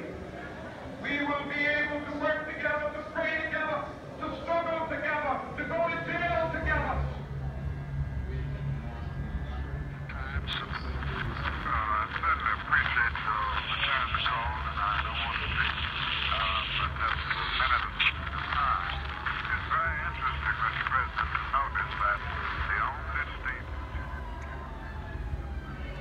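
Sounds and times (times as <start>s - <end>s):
steady low hum: 0.0s - 26.0s
telephone voices: 10.1s - 24.4s.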